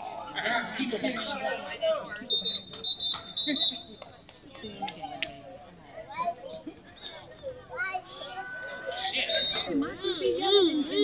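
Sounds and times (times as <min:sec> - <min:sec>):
young voices calling and shouting: 0:04.6 - 0:11.0.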